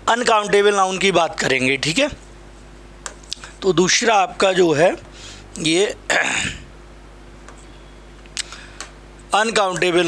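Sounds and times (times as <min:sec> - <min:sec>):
low room hum: 0:00.0 - 0:10.0
man clearing throat: 0:06.1 - 0:06.7.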